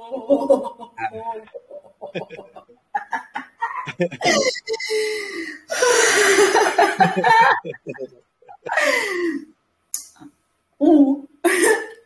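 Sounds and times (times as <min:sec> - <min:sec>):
woman laughing: 0:02.1 - 0:09.4.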